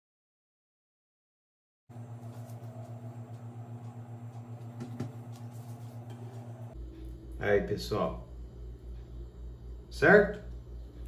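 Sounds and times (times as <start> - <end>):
low pulsing hum: 1.9 - 11.0.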